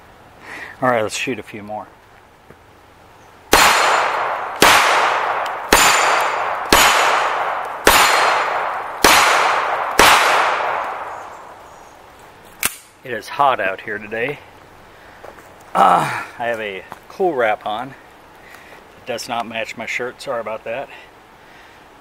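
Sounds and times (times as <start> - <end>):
pistol shots with echo: 3.5 - 11.6.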